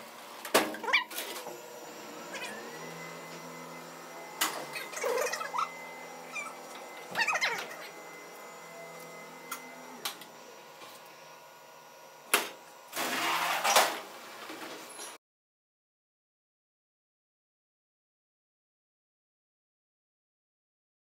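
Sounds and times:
elevator motor hum: 0:00.0 - 0:13.6.

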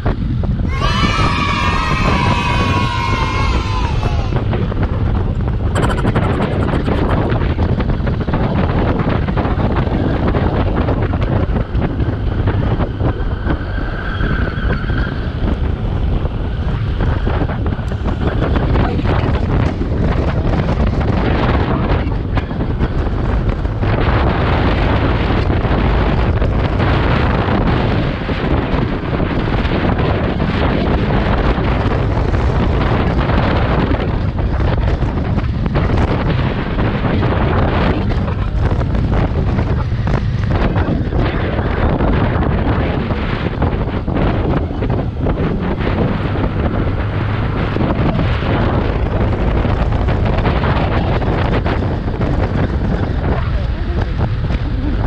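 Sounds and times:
road noise: 0:00.0 - 0:55.0
wind buffeting microphone: 0:00.0 - 0:55.0
motorcycle engine running: 0:04.4 - 0:13.6, 0:15.4 - 0:55.0.

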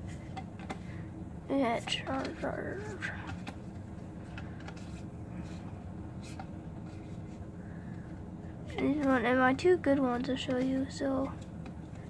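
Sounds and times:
steady low hum: 0:00.0 - 0:12.0
trading cards sliding in hand: 0:02.2 - 0:08.8.

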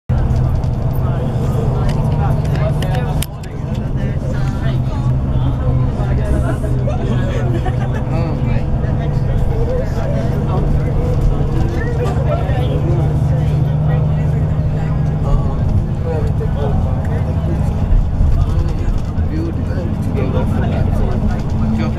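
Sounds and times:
bus engine and road drone: 0:00.1 - 0:21.9
passengers talking: 0:00.1 - 0:21.9.

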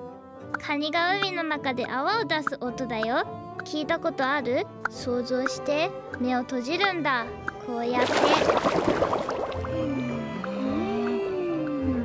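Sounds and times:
bubbling pops: 0:08.0 - 0:10.0.

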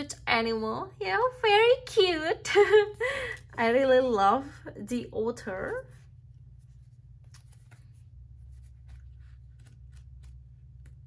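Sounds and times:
steady low hum: 0:00.0 - 0:11.0
fingers brushing over card: 0:05.8 - 0:11.0.

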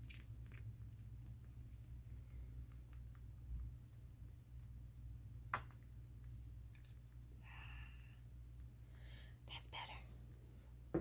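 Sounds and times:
low steady hum: 0:00.0 - 0:11.0
woman whispering: 0:09.4 - 0:10.2.

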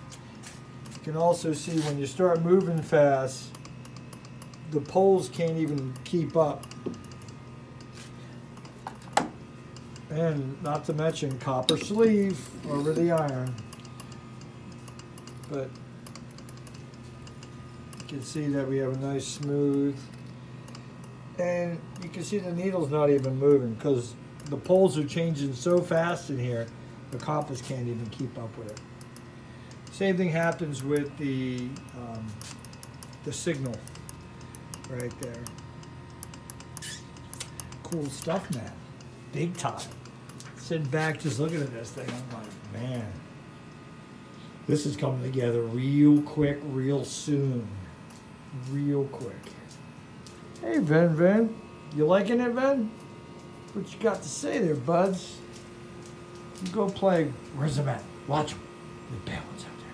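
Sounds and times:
faint generator hum: 0:00.0 - 0:59.9
sharp metallic clicks: 0:02.2 - 0:07.9, 0:09.7 - 0:18.2, 0:24.4 - 0:42.8.

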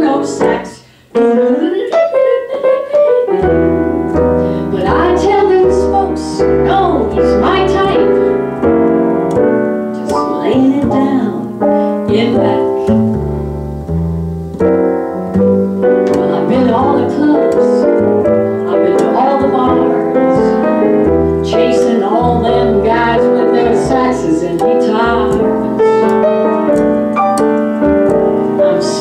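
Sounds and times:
jazz piano: 0:00.0 - 0:29.0
plucked upright bass: 0:03.4 - 0:29.0.

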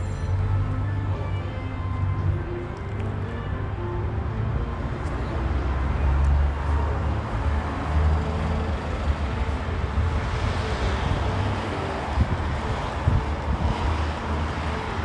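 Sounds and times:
low rumble of passing cars: 0:00.0 - 0:15.0.

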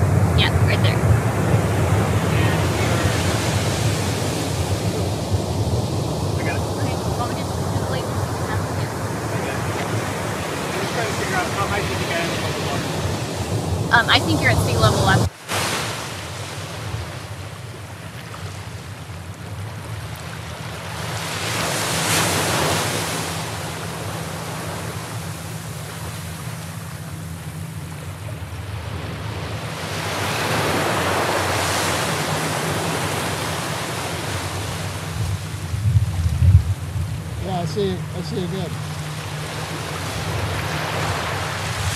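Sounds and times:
waves breaking on beach: 0:00.0 - 0:41.9.

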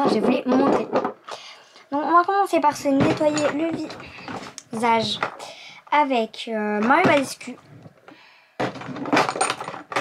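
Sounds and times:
containers clattering and clinking: 0:02.7 - 0:05.5, 0:08.6 - 0:10.0.

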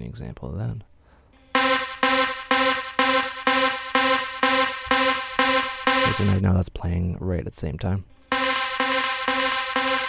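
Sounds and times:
pulsing synth chord with delay: 0:01.4 - 0:06.4, 0:08.3 - 0:10.0.

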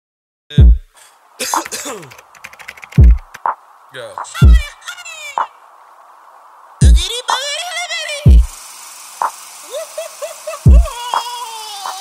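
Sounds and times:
keyboard typing: 0:01.4 - 0:03.6.

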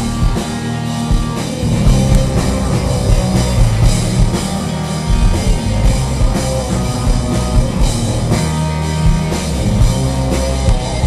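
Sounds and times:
distorted electric guitar: 0:00.0 - 0:11.0
drum kit beat: 0:00.0 - 0:11.0.

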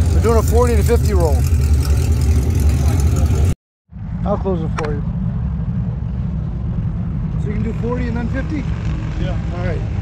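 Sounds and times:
car engine idling: 0:00.0 - 0:08.4.

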